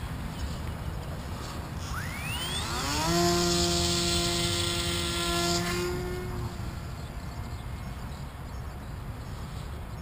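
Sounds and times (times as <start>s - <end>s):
model airplane motor whine: 1.2s - 7.7s.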